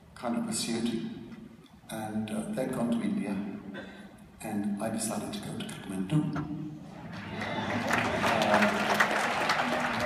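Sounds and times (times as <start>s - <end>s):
audience cheering: 7.1s - 10.0s
audience clapping: 7.1s - 10.0s.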